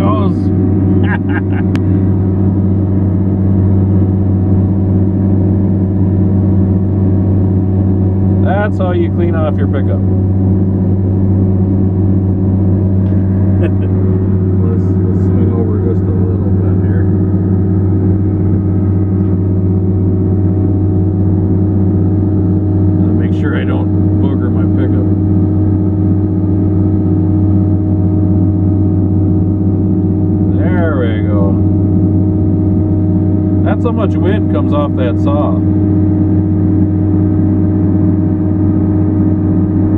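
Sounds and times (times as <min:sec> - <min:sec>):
diesel engine running: 0:00.0 - 0:39.9.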